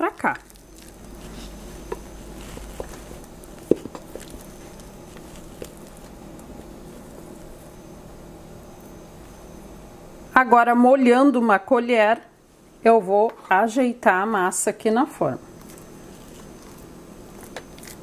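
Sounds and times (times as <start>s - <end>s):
sticky dough being scraped: 0.0s - 7.7s, 15.5s - 18.0s
faint low hum: 0.0s - 18.0s.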